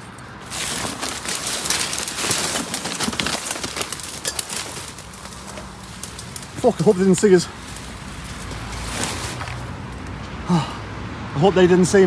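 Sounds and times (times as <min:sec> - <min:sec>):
leaves and twigs rustling: 0:00.0 - 0:10.3.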